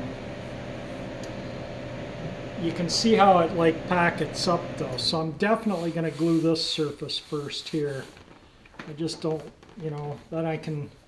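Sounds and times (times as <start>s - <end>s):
workshop hum and hiss: 0.0s - 11.0s.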